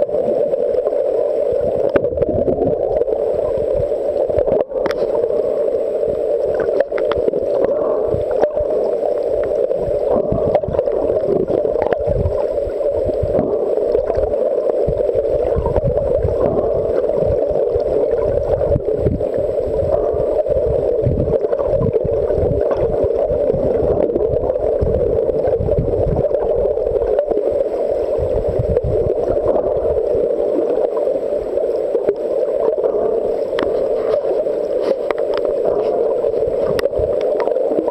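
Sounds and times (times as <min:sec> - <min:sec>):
underwater rushing noise: 0:00.0 - 0:37.9
faint clicks: 0:06.4 - 0:09.7, 0:33.4 - 0:37.9.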